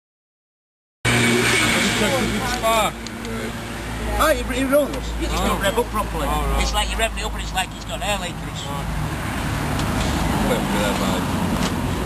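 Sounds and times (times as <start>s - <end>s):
men talking: 1.4s - 9.0s, 10.2s - 11.4s.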